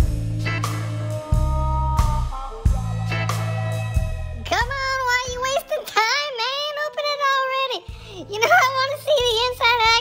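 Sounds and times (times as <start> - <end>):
backing tune: 0.0 - 5.8
high-pitched cartoon voice singing: 0.4 - 7.7.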